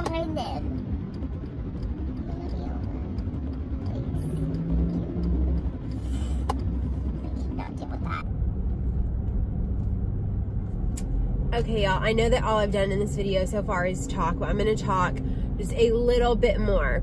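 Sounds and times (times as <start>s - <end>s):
car road and engine rumble: 0.0s - 17.0s.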